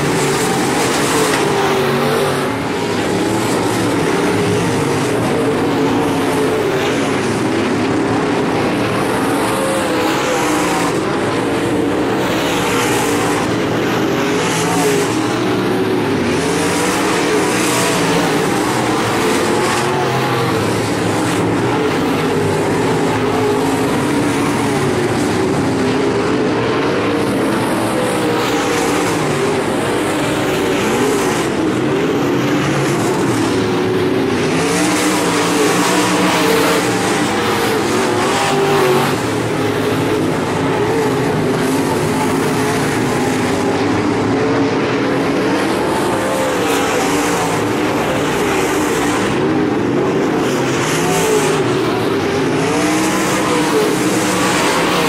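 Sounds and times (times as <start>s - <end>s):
race car engines racing: 0.0s - 55.0s.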